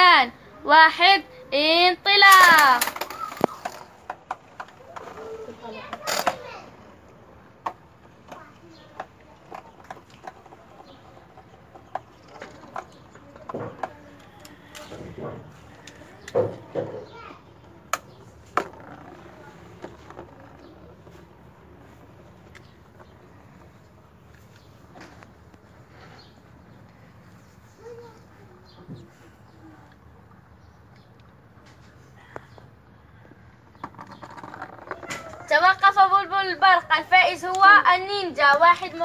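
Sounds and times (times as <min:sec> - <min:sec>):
children calling out: 0:02.1 - 0:03.9, 0:04.6 - 0:06.9.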